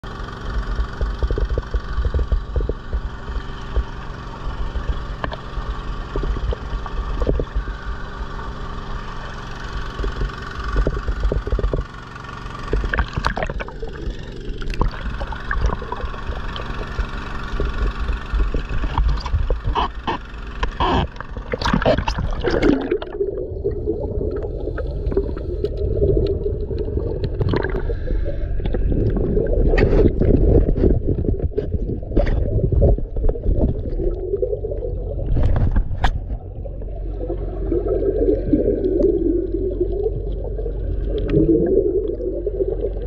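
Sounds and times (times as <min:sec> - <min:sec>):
dredge engine running: 0:00.0 - 0:22.0.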